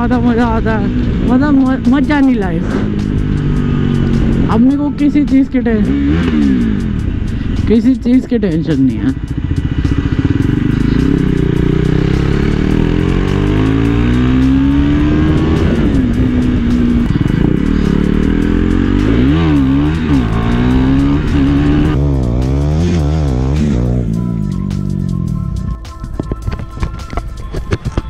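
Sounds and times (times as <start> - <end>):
motorcycle engine revving: 0.0 - 27.0
motorcycle engine running: 0.0 - 28.0.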